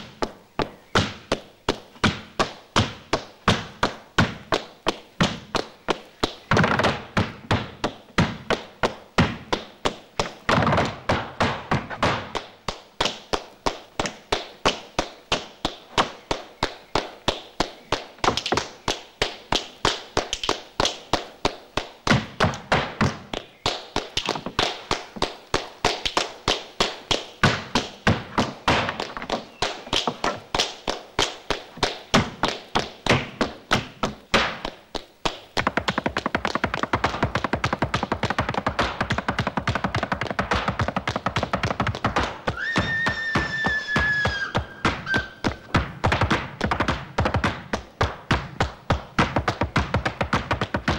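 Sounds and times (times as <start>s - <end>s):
boots stamping on wooden planks: 0.0s - 50.9s.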